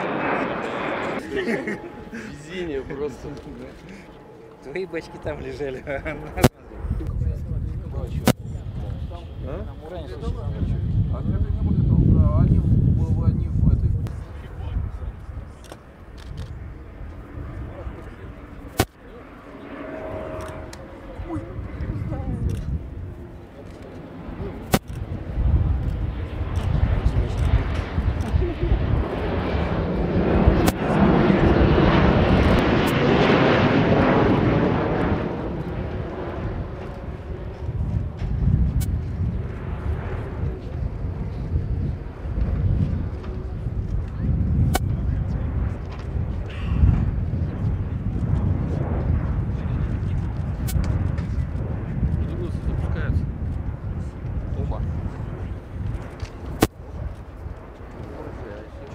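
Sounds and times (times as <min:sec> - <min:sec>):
jet airliner engines in flight: 0:00.0 - 0:58.9.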